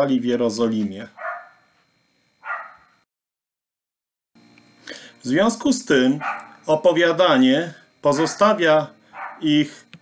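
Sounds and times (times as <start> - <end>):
dog barking: 1.2 - 1.7, 2.4 - 3.0, 6.2 - 6.6, 8.2 - 8.5, 9.1 - 9.5.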